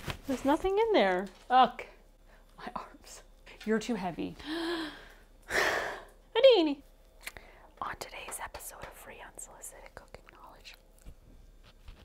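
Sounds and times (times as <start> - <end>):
woman whispering softly: 7.8 - 11.0.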